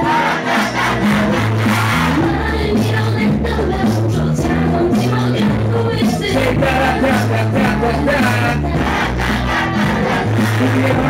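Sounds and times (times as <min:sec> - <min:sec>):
crowd shouting along: 0:00.0 - 0:02.4, 0:08.1 - 0:11.0
hip hop beat with heavy bass: 0:00.0 - 0:11.0.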